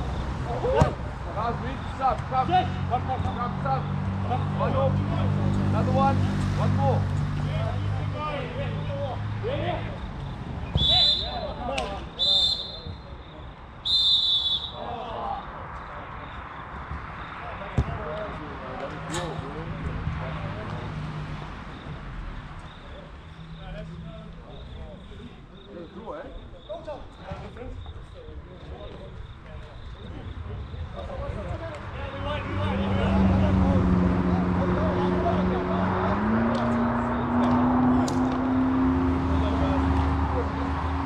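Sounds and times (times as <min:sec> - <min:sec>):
whistle blasts: 0:10.6 - 0:14.9.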